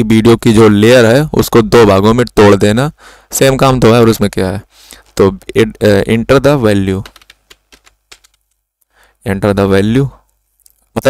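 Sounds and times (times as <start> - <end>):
keyboard keystroke clicks: 7.0 - 8.5.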